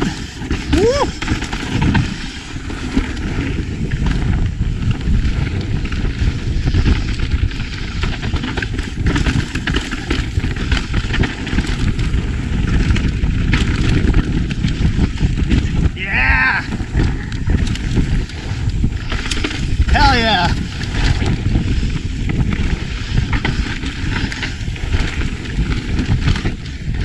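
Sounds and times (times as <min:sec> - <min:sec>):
bike knocks and rattles: 0:00.0 - 0:27.0
tyres on dirt and rock: 0:00.0 - 0:27.0
wind rushing on microphone: 0:00.0 - 0:27.0.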